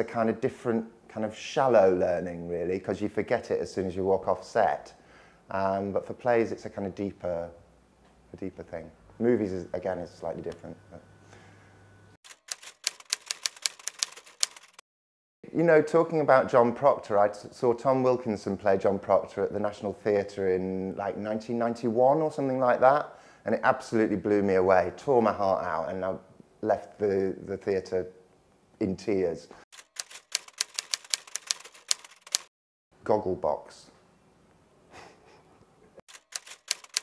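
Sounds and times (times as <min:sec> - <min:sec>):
typewriter key clicks: 0:12.3 - 0:14.8, 0:29.8 - 0:32.5, 0:36.1 - 0:37.0.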